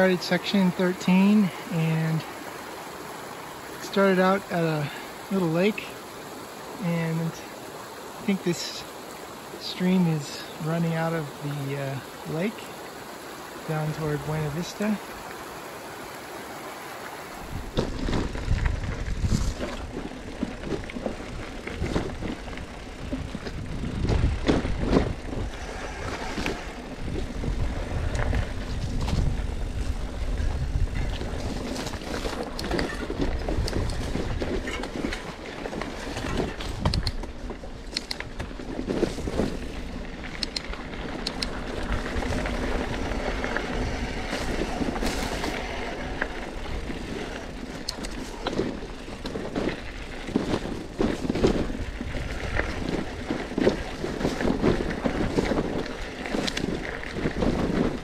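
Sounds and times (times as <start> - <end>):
low rumble on microphone: 17.5 - 32.3
bike knocks and rattles: 17.6 - 58.0.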